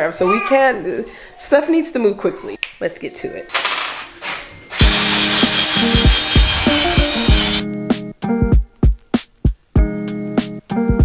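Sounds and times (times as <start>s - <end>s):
background music with steady beat: 4.4s - 11.0s
power drill mixer whirring: 4.7s - 7.6s.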